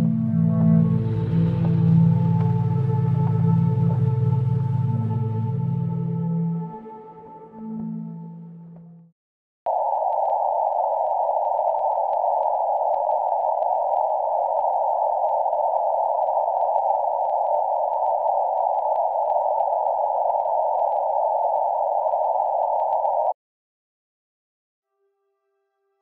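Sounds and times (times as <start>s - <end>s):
faint crackles: 9.7s - 23.3s.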